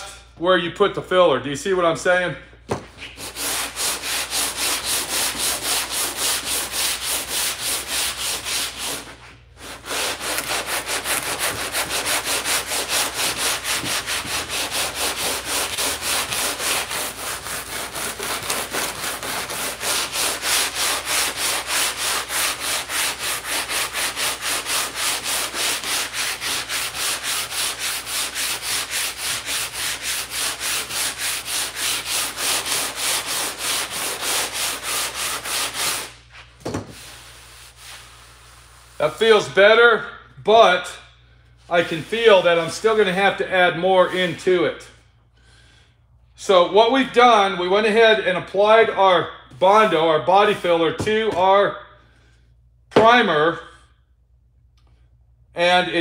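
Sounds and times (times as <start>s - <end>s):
sanding board rasping on filler: 3.0s - 39.4s.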